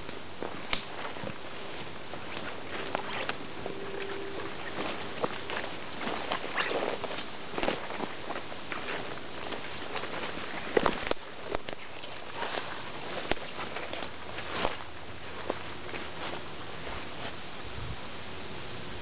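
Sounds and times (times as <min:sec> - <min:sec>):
twigs snapping: 0:00.0 - 0:01.4, 0:04.6 - 0:16.1
footsteps through undergrowth: 0:00.0 - 0:17.5
leaves and brush rustling: 0:00.0 - 0:19.0.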